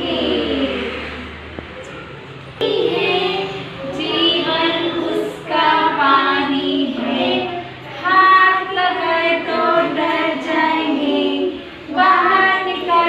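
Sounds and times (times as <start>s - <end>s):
children singing in chorus: 0.0s - 1.3s, 2.6s - 13.0s
women singing along: 0.0s - 1.3s, 2.6s - 13.0s.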